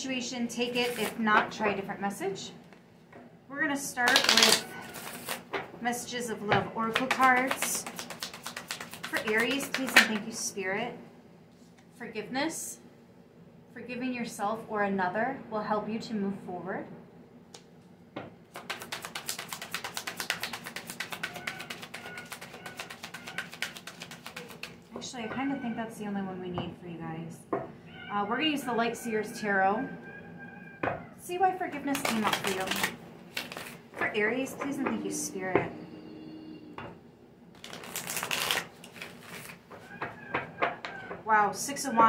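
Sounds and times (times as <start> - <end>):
cards being shuffled: 0.6 - 1.2, 4.0 - 5.5, 6.8 - 10.3, 18.5 - 24.9, 31.8 - 34.8, 37.6 - 39.9.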